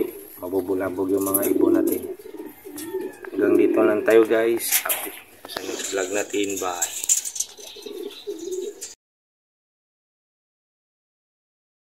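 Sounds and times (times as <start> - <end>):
pigeon cooing: 0.0 - 9.0.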